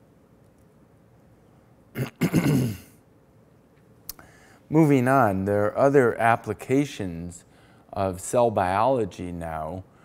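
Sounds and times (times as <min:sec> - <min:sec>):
man coughing: 0:02.0 - 0:03.0.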